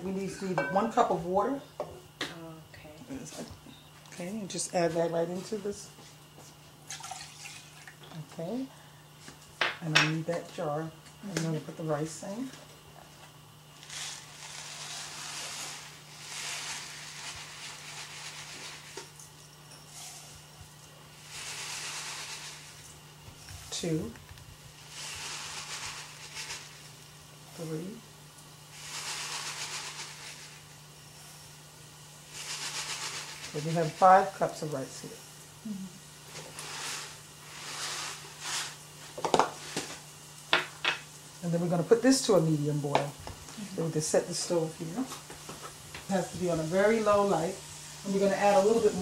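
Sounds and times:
low electrical hum: 0.0 - 49.0
dry rice pouring into pot: 13.7 - 19.3, 19.9 - 41.2, 41.9 - 49.0.

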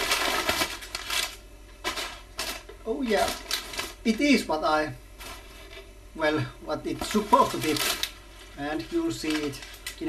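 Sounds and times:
packing material rustling and crinkling: 0.0 - 4.5, 5.2 - 6.0, 6.8 - 10.0.

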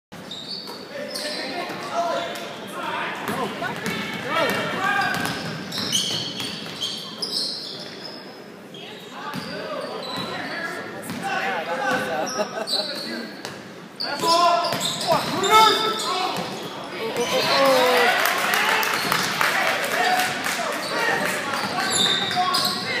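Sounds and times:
sneaker squeaks: 0.2 - 2.7, 4.9 - 11.2, 11.9 - 17.7, 20.8 - 23.0
spectators talking and calling out: 15.1 - 23.0.

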